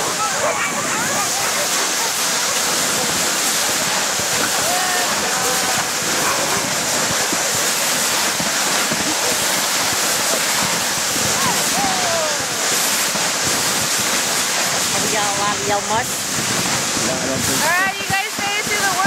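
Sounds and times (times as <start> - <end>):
sled runners sliding through snow: 0.0 - 19.0
wind across microphone: 0.0 - 19.0.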